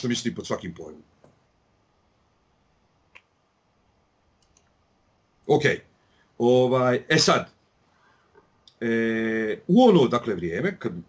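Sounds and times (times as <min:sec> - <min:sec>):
soft click: 0:03.1 - 0:03.4.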